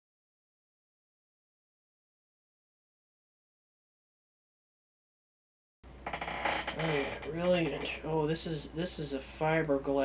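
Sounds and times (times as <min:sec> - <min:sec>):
steady low hum: 0:05.9 - 0:10.0
man speaking: 0:06.7 - 0:10.0.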